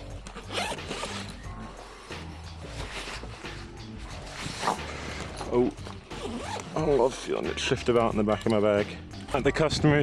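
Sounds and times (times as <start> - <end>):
zipper being pulled: 0.1 - 1.4, 2.1 - 7.1.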